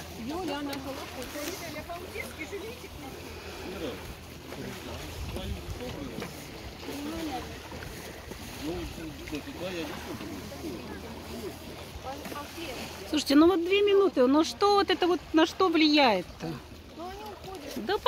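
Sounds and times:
wind on microphone: 4.8s - 6.3s.

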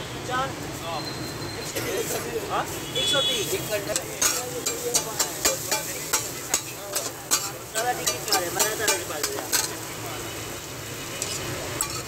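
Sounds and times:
frying sizzle: 1.8s - 12.0s
metal spatulas striking a griddle: 3.9s - 9.8s, 11.2s - 12.0s.

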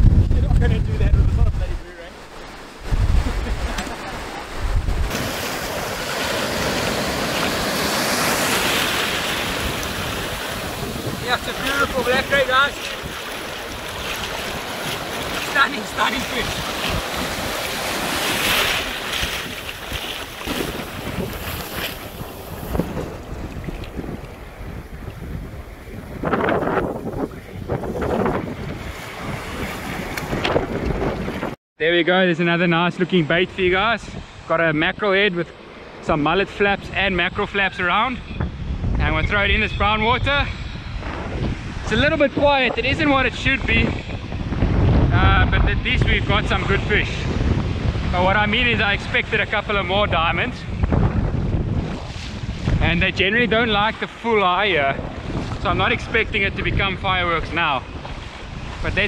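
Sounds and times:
wind buffeting microphone: 0.0s - 31.6s, 36.5s - 59.0s
surf breaking: 0.6s - 31.6s.

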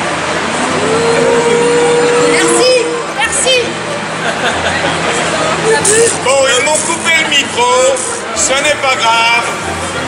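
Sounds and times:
audience crowd din: 0.0s - 10.0s
long steady held tone: 0.4s - 3.5s.

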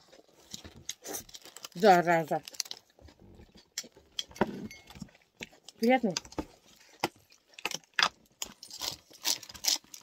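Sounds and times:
wet chewing noises: 0.0s - 10.0s.

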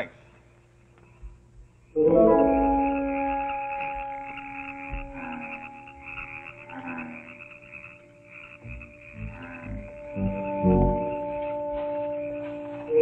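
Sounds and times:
frogs croaking: 0.0s - 13.0s
held organ notes: 0.0s - 13.0s.

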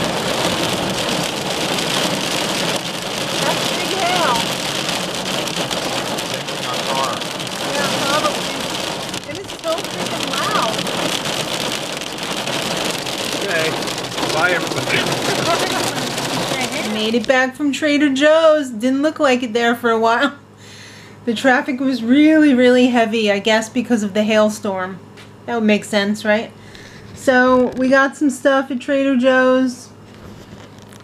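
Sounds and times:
rain and hail on car roof: 0.0s - 18.3s, 30.1s - 31.0s.

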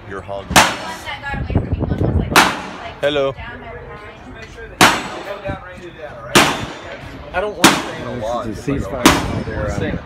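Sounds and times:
gunshot: 4.8s - 5.2s, 6.4s - 6.9s, 9.0s - 9.5s.

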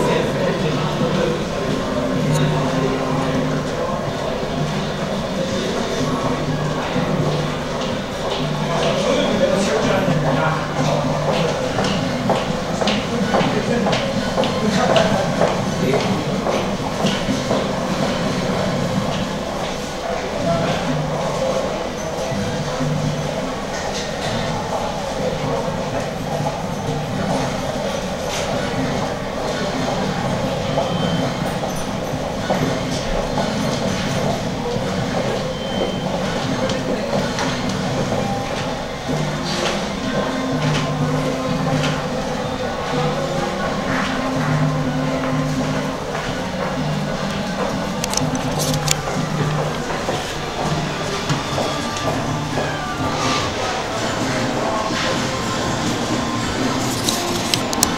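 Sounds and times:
voices murmuring: 0.0s - 57.9s.

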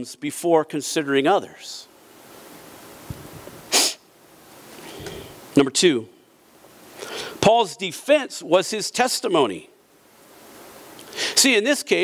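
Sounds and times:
sharp burst of breath: 3.7s - 4.1s, 4.8s - 5.4s, 7.0s - 7.4s, 11.0s - 11.4s.

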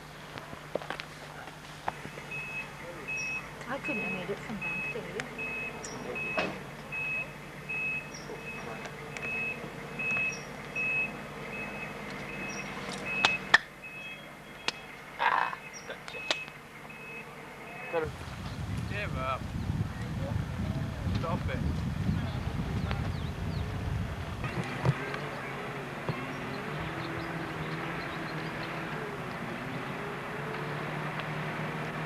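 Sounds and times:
high electronic beep: 2.3s - 14.3s, 15.5s - 18.0s
sharp clicks: 12.0s - 13.7s, 14.6s - 15.1s.

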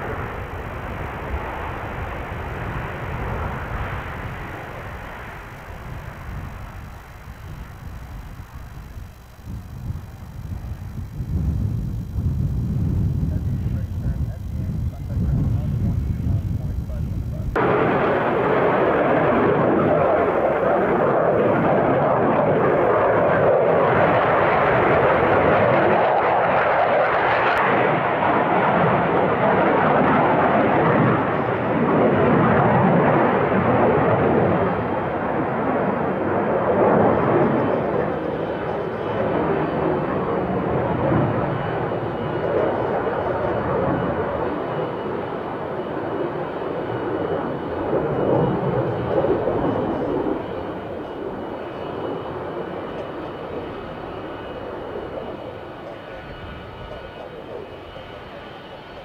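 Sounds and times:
jet engine rush: 0.0s - 59.0s.

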